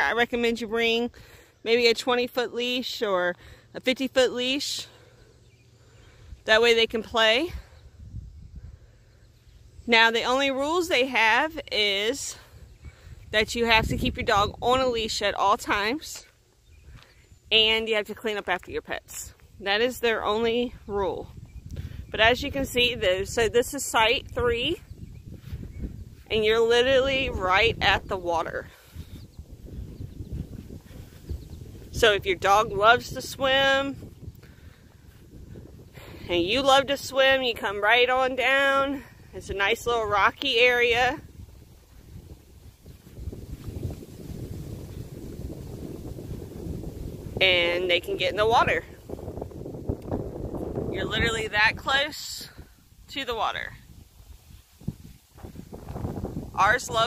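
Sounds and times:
wind rumble on microphone: 4.2 - 57.0
microphone handling noise: 24.1 - 36.8, 40.5 - 47.5, 48.9 - 51.5, 53.9 - 57.0
footsteps on grass: 24.2 - 26.7, 28.1 - 32.0, 41.8 - 46.4.

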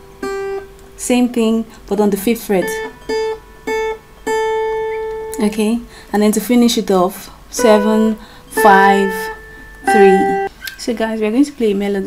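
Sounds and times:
guitar string plucked: 7.6 - 10.5.

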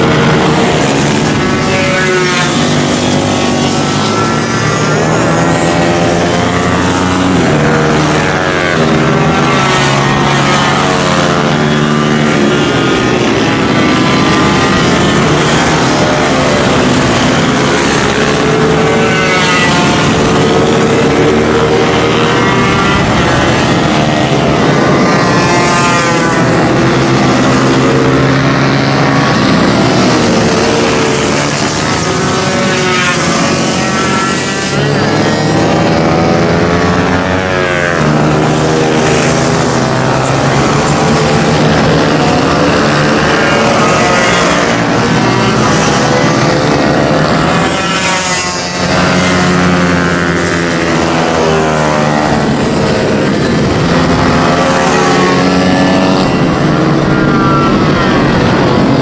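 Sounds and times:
mini-bike engines revving: 0.0 - 59.0.

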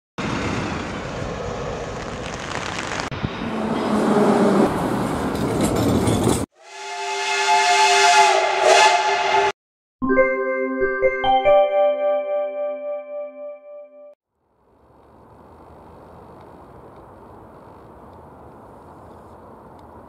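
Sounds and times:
city traffic: 0.2 - 6.6, 14.4 - 20.0
vehicle horn chord: 6.6 - 9.6.

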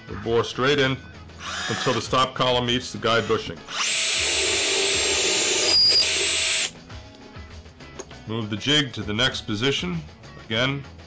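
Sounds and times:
power drill boring into wood: 1.4 - 2.1, 3.1 - 6.7.

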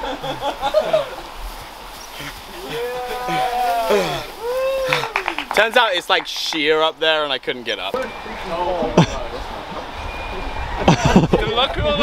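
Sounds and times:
man chuckling: 8.8 - 9.5, 10.8 - 11.5.

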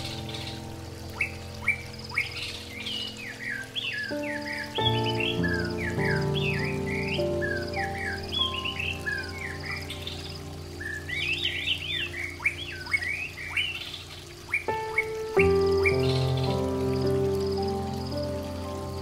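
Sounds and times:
birds chirping: 0.0 - 19.0
soft slow music of held chords: 0.0 - 19.0.

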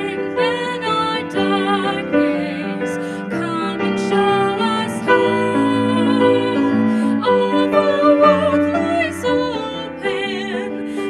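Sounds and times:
grand piano accompaniment: 0.0 - 11.0
woman singing a hymn: 0.0 - 11.0.

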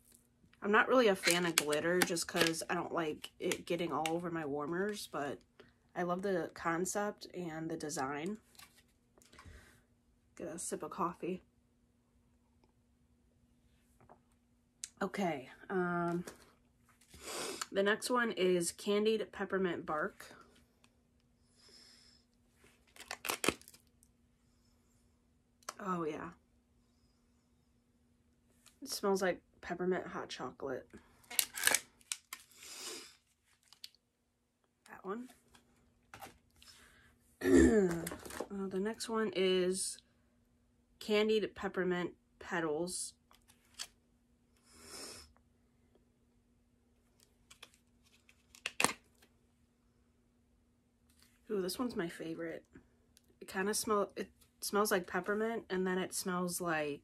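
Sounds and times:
plastic package rustling: 1.1 - 2.7, 22.8 - 23.9, 31.2 - 32.6, 33.4 - 33.9
sharp plastic cracks and clicks: 31.3 - 32.4.

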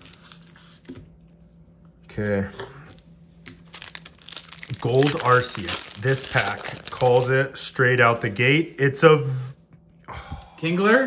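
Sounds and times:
foil wrapper crinkling: 3.4 - 7.4.

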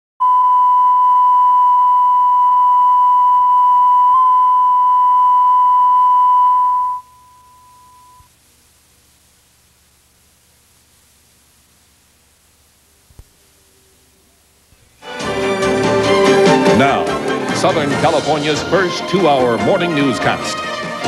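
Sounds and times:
steady test tone: 0.2 - 8.3
tape hiss and hum: 0.2 - 21.0.

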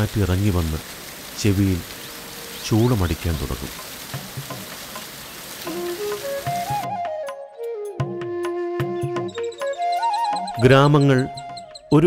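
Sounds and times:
waterfall rushing hiss: 0.0 - 6.8
flute melody: 5.6 - 12.0
man's voice: 10.6 - 12.0.

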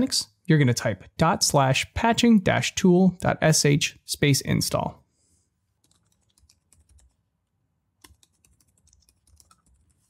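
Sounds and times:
computer keyboard keystrokes: 5.8 - 7.2, 8.0 - 10.0.

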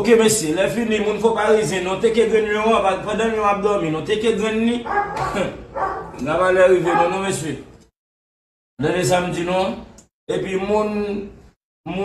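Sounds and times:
man speaking in raised tone: 0.0 - 3.2, 6.3 - 7.6.

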